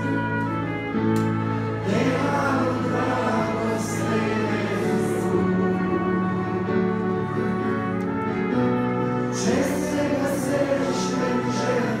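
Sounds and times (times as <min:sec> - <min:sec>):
held instrumental accompaniment: 0:00.0 - 0:12.0
people singing a hymn: 0:01.7 - 0:06.5, 0:09.1 - 0:12.0.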